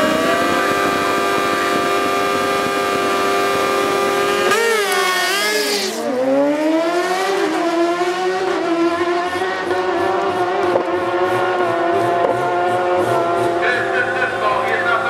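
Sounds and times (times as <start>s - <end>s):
motorcycles accelerating at full throttle: 0.0s - 15.0s.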